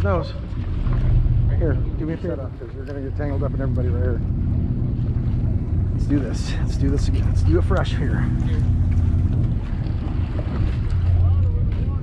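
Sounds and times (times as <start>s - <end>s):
boat engine humming: 0.0s - 12.0s
wind buffeting microphone: 0.0s - 12.0s.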